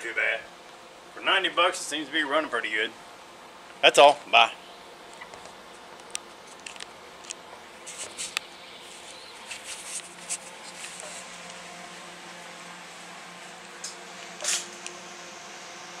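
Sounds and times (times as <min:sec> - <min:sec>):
faint steady hum: 0:00.0 - 0:16.0
camera handling clicks and rustles: 0:05.2 - 0:08.4.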